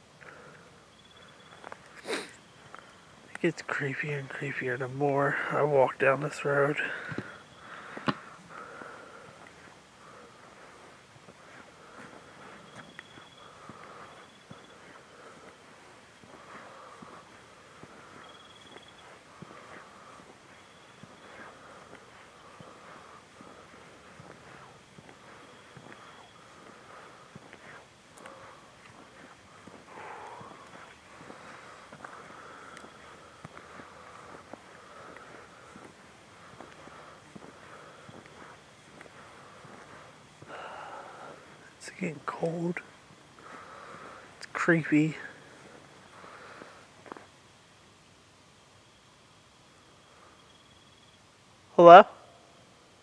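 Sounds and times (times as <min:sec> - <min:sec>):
footsteps on unpaved road: 0:00.0 - 0:47.4
soft breathy rustles: 0:06.3 - 0:47.4.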